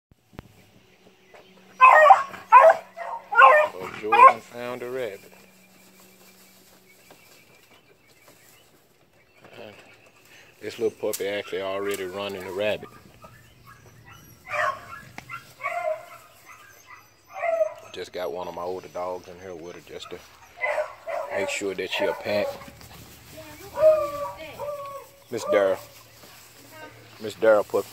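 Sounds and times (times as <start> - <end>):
hound barking: 1.7 - 4.6, 11.3 - 18.1, 18.8 - 26.0
dog barking high-pitched: 1.8 - 4.4, 14.4 - 16.3, 17.3 - 17.9, 20.6 - 22.7.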